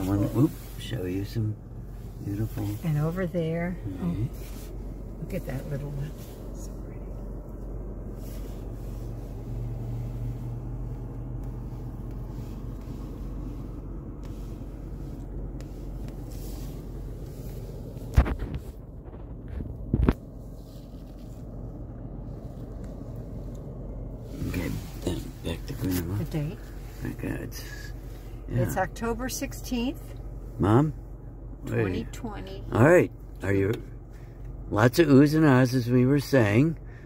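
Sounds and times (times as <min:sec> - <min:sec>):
car cabin engine and road rumble: 0:00.0 - 0:37.0.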